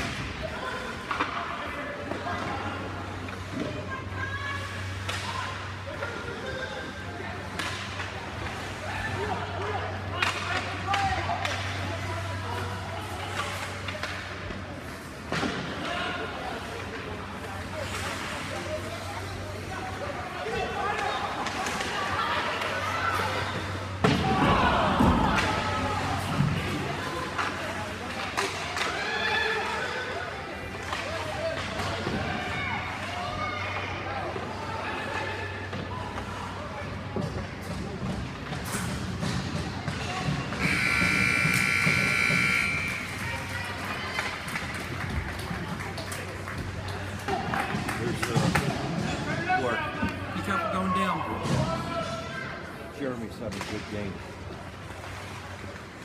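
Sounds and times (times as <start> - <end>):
spectator chatter: 0.0 - 56.0
high-pitched signal blast: 40.6 - 43.2.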